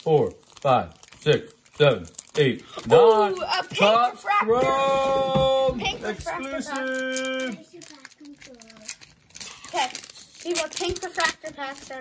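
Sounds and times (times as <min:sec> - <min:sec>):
young person speaking: 0:03.2 - 0:05.0, 0:05.8 - 0:08.9, 0:09.7 - 0:12.0.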